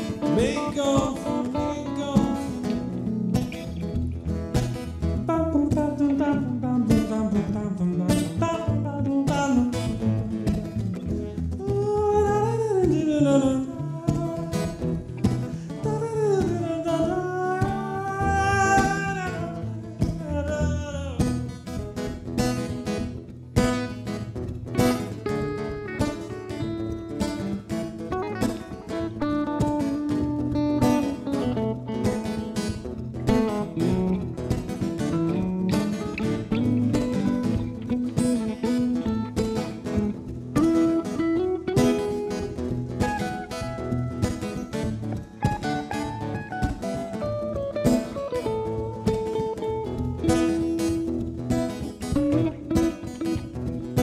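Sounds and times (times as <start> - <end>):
acoustic guitar strumming: 0.0 - 54.0
electric guitar melodic lines: 0.0 - 54.0.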